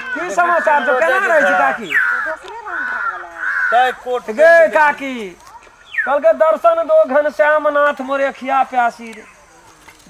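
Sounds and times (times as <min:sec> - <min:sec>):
bird calling: 0:00.0 - 0:10.0.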